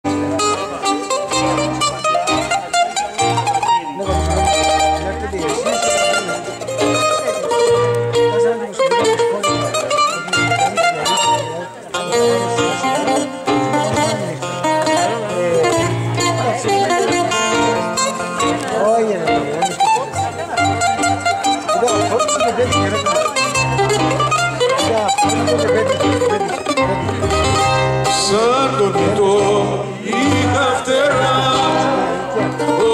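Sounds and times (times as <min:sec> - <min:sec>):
bouzouki plucked melody: 0:00.0 - 0:32.9.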